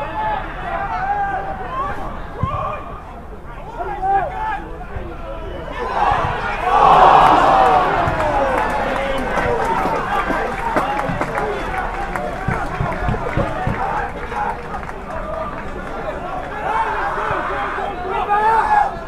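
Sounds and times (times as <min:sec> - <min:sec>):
crowd shouting: 0:00.0 - 0:19.0
scattered shouts and voices: 0:00.0 - 0:19.0.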